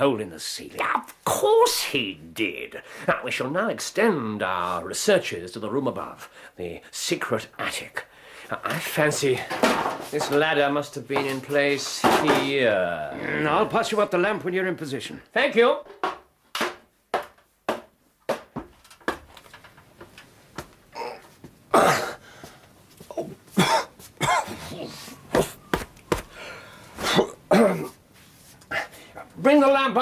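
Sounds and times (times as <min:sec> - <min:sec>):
feet knocking on ladder rungs: 0:15.9 - 0:20.8, 0:25.3 - 0:26.4
man grunting and coughing: 0:20.9 - 0:22.2, 0:23.1 - 0:25.5, 0:27.0 - 0:28.0.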